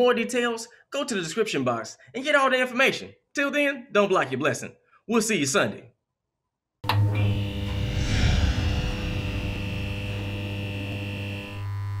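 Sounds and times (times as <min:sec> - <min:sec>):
high electric whine: 0:06.8 - 0:12.0
low electric hum: 0:07.0 - 0:12.0.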